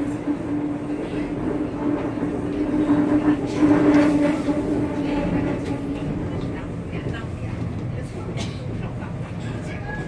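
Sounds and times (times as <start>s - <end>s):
train wheels rumbling: 0.0s - 10.0s.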